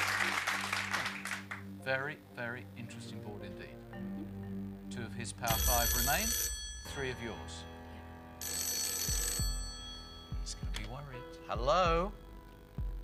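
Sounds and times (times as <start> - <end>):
background music: 0.0 - 13.0
telephone ringing: 5.4 - 10.8.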